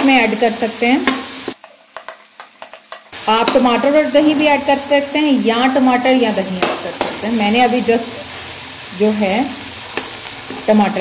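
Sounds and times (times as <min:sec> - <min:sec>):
vegetables sizzling in oil: 0:00.0 - 0:11.0.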